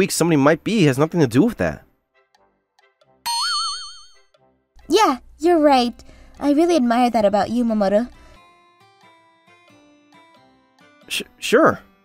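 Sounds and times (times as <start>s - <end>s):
cartoon boing wobbling tone: 3.3s - 4.1s.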